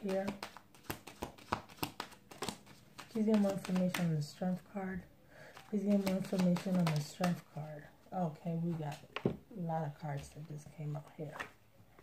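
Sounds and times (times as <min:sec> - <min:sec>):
cards being shuffled: 0:00.0 - 0:04.4, 0:05.5 - 0:07.5.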